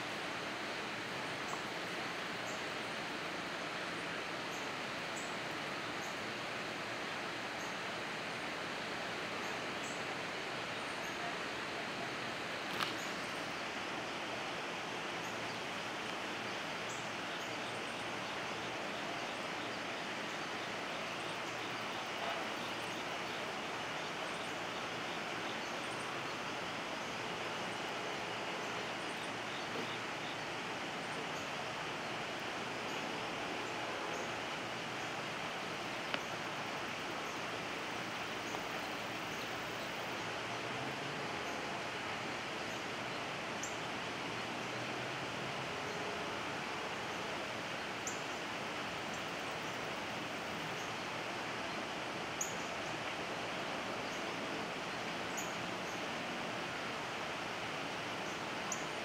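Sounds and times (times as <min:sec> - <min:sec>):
even outdoor hiss: 0:00.0 - 0:59.0.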